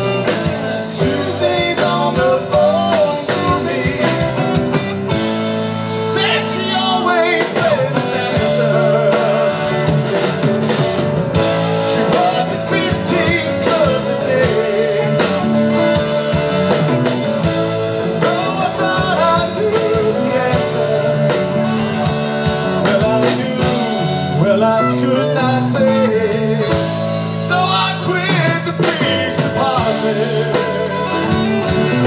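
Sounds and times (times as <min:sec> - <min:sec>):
live band with electric guitars: 0:00.0 - 0:32.0.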